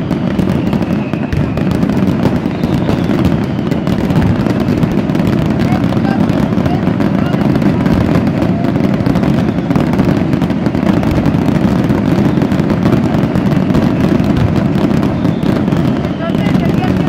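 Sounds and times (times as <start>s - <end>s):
fireworks bangs and crackles: 0.0s - 17.0s.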